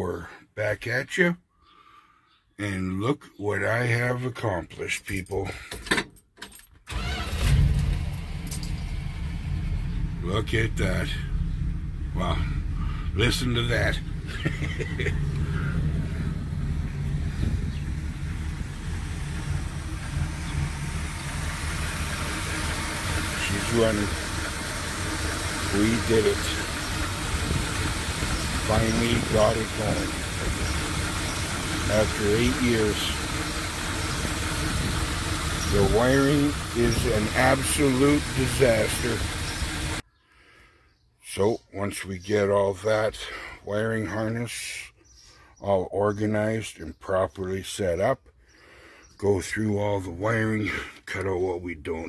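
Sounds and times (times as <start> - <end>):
pickup engine starting and running: 6.9 - 40.0.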